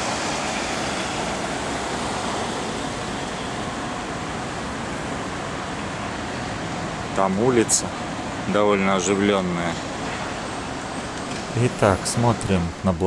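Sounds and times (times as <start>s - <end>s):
city street traffic: 0.0s - 13.0s.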